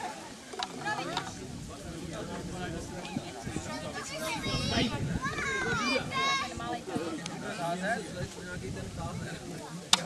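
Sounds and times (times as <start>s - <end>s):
children calling out and chattering: 0.0s - 8.4s.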